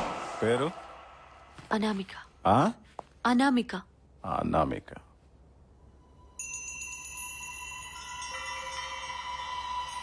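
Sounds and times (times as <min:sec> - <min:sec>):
high chime-like ringing tones: 0:06.0 - 0:10.0.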